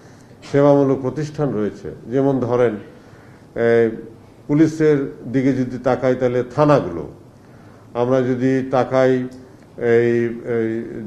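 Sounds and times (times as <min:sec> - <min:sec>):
man talking into microphone: 0:00.4 - 0:03.0, 0:03.6 - 0:07.2, 0:07.9 - 0:11.0.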